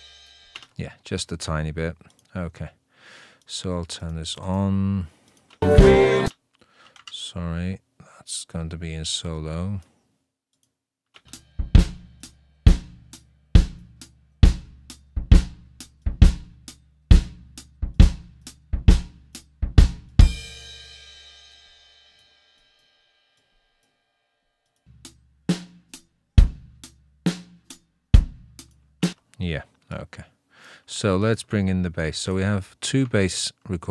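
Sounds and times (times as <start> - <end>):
drum kit playing steady beat: 0.0 - 0.6, 5.6 - 6.3, 11.3 - 22.3, 25.0 - 29.2.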